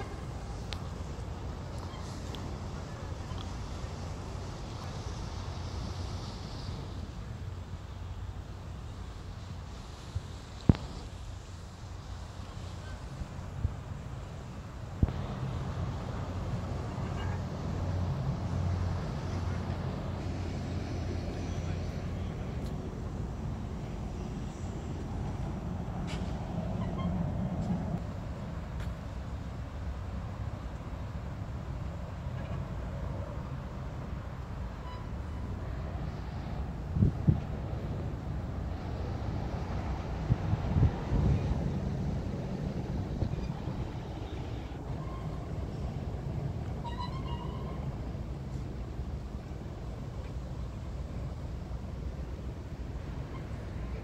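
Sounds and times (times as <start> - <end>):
city traffic rumble: 0.0 - 54.0.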